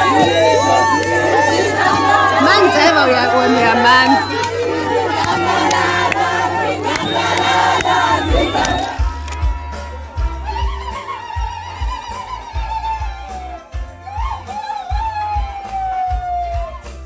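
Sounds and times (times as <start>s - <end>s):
ululating: 0.0s - 9.2s
crowd singing and shouting: 0.0s - 17.0s
music with low steady beat: 0.0s - 17.0s
handclaps: 4.3s - 11.1s, 14.5s - 17.0s.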